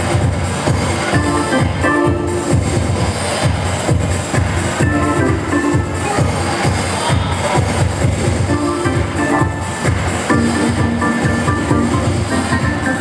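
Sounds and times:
bass and drum beat: 0.0s - 13.0s
electric keyboard funk playing: 1.1s - 6.8s, 8.3s - 13.0s.

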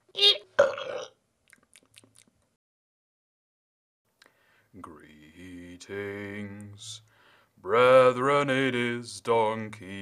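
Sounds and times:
person burping: 0.1s - 1.2s.

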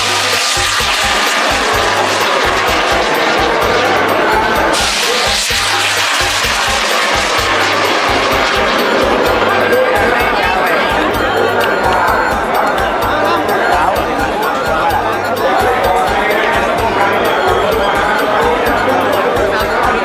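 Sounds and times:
rocket rushing roar: 0.0s - 11.1s
festival music with steady beat: 0.0s - 20.0s.

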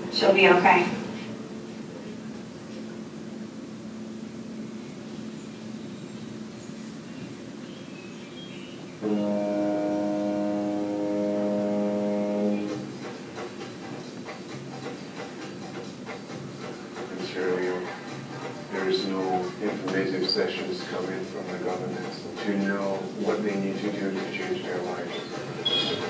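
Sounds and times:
low steady hum: 0.0s - 26.0s
ship's horn blast: 9.0s - 13.2s, 25.6s - 26.0s.

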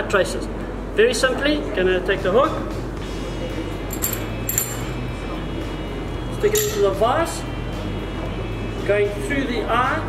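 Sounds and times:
metal fishing hook clinking: 3.9s - 5.0s, 6.5s - 7.0s.

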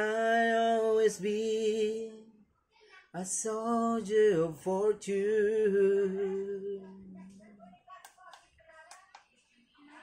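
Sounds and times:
faint voices: 1.7s - 10.0s.

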